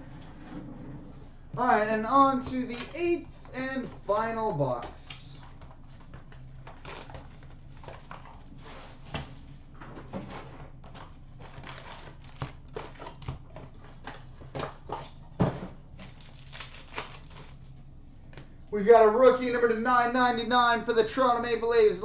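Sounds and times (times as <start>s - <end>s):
shrink wrap crinkling and tearing: 5.1s - 8.5s, 11.1s - 14.9s, 16.0s - 17.8s.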